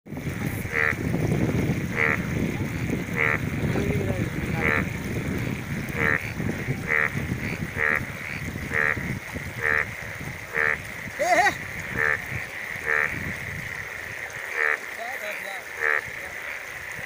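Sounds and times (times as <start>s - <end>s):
rushing water and wind: 0.1s - 17.0s
frog croaking: 0.4s - 17.0s.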